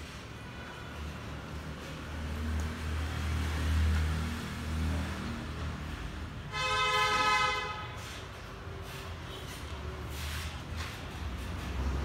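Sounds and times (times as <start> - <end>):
vehicle horn honking: 6.5 - 8.2.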